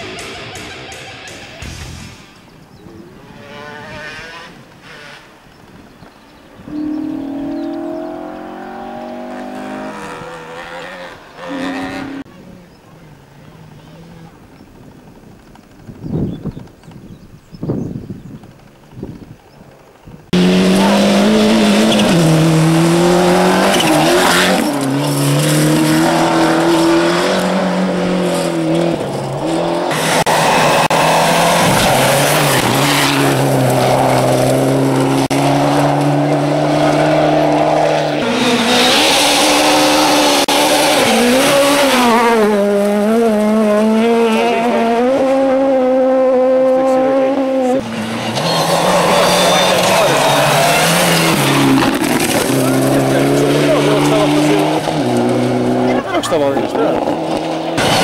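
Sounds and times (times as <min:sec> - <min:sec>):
rally car engines revving hard: 0:02.7 - 0:12.8, 0:20.3 - 0:58.0.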